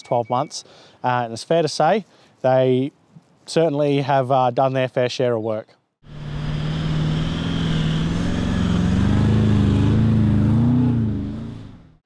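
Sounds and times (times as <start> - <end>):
vehicle engine running under load: 6.0 - 12.0.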